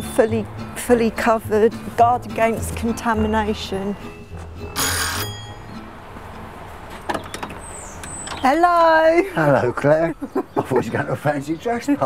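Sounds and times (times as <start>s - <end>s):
low background music: 0.0s - 6.9s
doorbell ringing: 4.8s - 5.8s
front door clicks: 7.0s - 8.6s.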